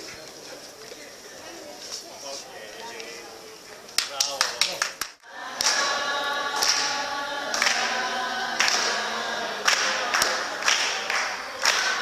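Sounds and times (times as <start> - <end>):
hands clapping in time: 4.0 - 12.0
group singing folk song: 5.2 - 12.0.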